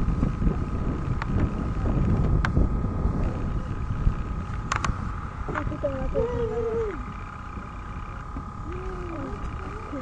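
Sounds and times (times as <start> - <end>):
steady high whine: 0.0 - 10.0.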